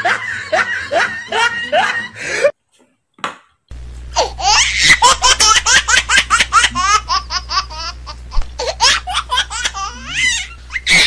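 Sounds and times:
person laughing: 0:00.0 - 0:02.5, 0:04.2 - 0:11.0.

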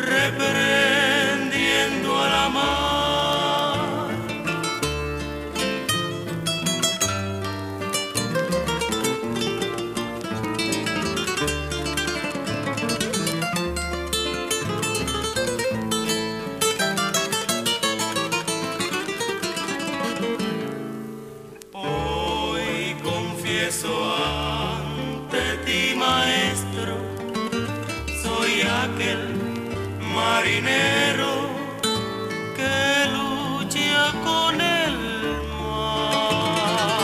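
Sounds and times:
acoustic guitars plucked runs: 0:00.0 - 0:37.0.

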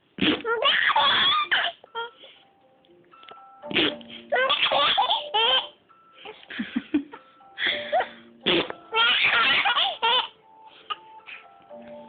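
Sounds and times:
baby laughing: 0:00.4 - 0:02.2, 0:04.3 - 0:06.4, 0:07.6 - 0:11.0.

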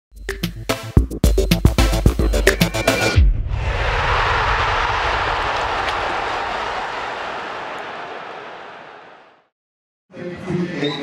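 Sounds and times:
long noisy whoosh: 0:03.3 - 0:05.8.

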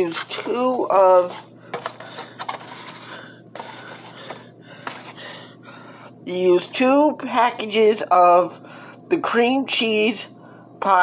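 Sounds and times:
rubbing and scraping handling noises: 0:00.0 - 0:05.4.

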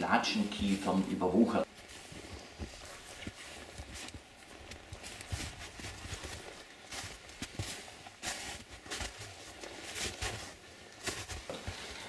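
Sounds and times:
boots footsteps on rocky ground: 0:01.7 - 0:12.0.

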